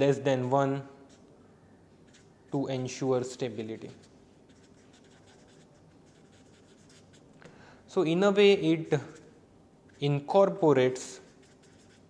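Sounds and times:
marker scratching on paper: 0:01.0 - 0:01.3, 0:02.0 - 0:07.3, 0:08.9 - 0:12.0.

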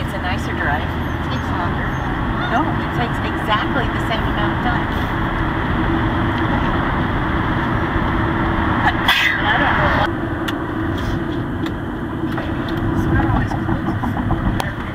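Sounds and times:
car road and engine noise: 0:00.0 - 0:14.9.

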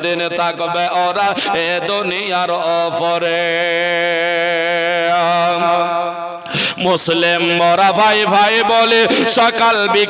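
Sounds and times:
man singing into a microphone: 0:00.0 - 0:10.0.

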